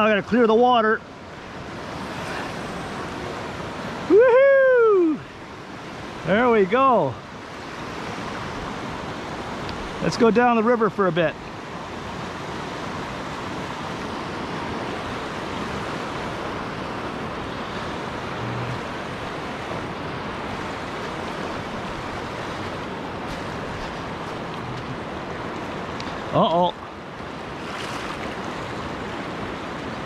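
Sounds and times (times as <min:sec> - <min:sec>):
river water rushing over rapids: 0:00.0 - 0:30.0.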